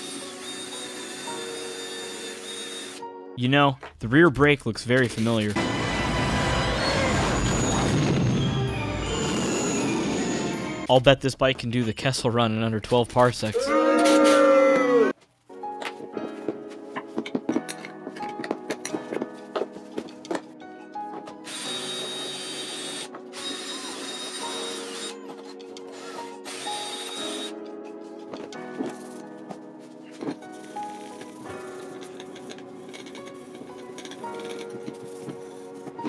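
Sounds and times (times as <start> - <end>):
drill with wire brush whirring: 0.0 - 3.0, 21.5 - 25.2, 25.9 - 27.6
chill beats music: 15.5 - 21.6, 24.5 - 36.0.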